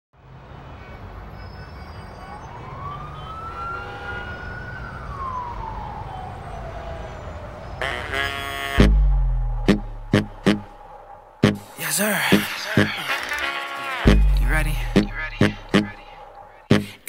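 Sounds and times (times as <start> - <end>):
low street noise rumble: 0.2 - 17.0
emergency siren wail: 1.3 - 16.7
person humming: 12.2 - 16.0.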